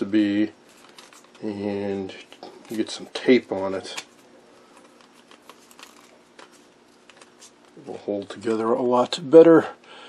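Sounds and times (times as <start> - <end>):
plastic strip rustling and clicking: 0.7 - 1.5, 3.6 - 8.6.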